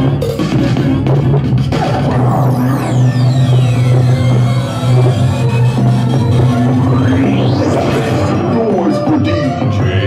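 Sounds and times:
dj music with deep bass: 0.0 - 10.0
high sweep falling in pitch: 1.7 - 9.2.

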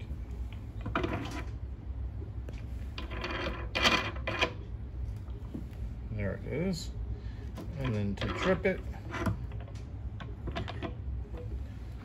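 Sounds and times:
plastic part rattling and scraping on metal: 0.8 - 1.6, 3.0 - 4.6, 7.6 - 11.5.

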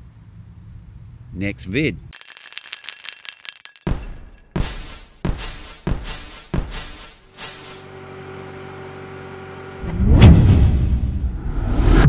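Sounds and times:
deep boom with whoosh: 9.8 - 12.0.

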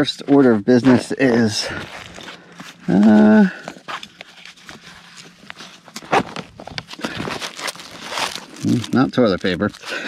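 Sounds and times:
fabric and plastic rustling: 0.1 - 10.0
rummaging in backpack pocket: 0.3 - 10.0.

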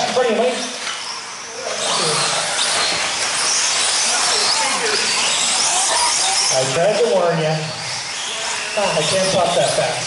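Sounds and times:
electric motor whines: 0.0 - 10.0.

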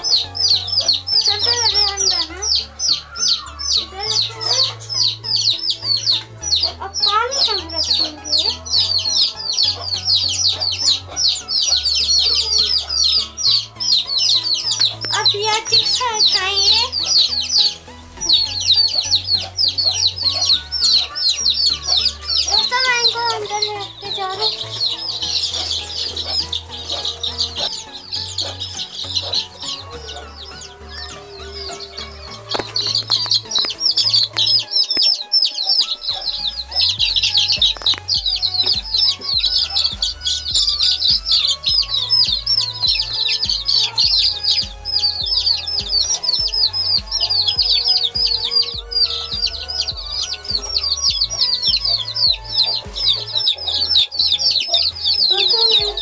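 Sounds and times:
chicks peeping: 0.0 - 56.0.

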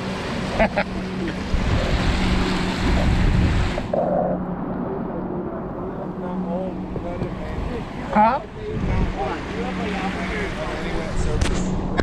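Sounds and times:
waves washing over concrete: 0.0 - 12.0
steady low hum: 0.2 - 12.0
wind on microphone: 1.1 - 12.0
low rumble: 1.4 - 9.2.

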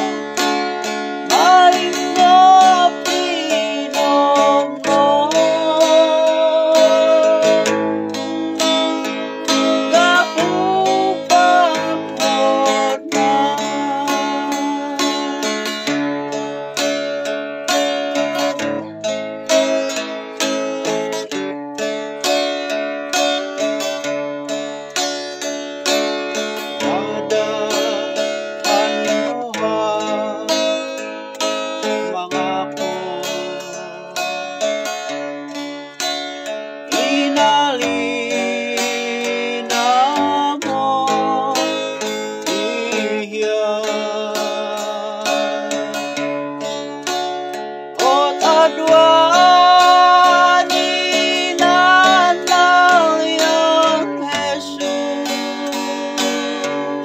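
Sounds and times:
man singing: 0.0 - 17.1, 26.0 - 35.2, 36.9 - 46.4, 48.0 - 57.0
strummed acoustic guitar: 0.0 - 57.0.

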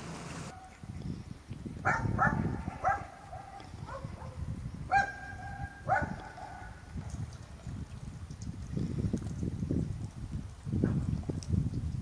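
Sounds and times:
wind noise on microphone: 0.0 - 12.0
dog barking: 1.8 - 6.8.

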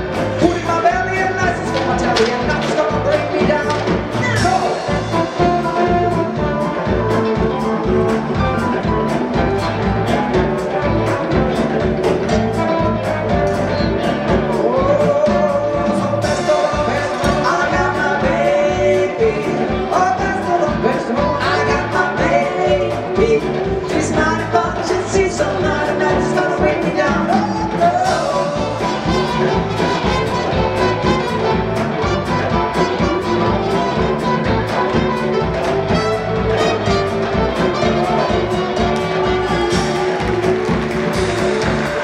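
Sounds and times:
live band upbeat music: 0.0 - 42.0
person singing: 12.5 - 42.0.

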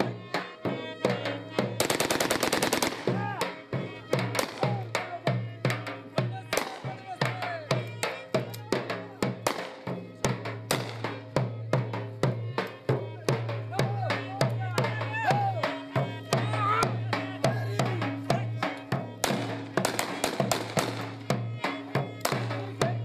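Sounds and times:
dhol drum beating dance rhythm: 0.0 - 23.0
wavering melody: 11.4 - 23.0.

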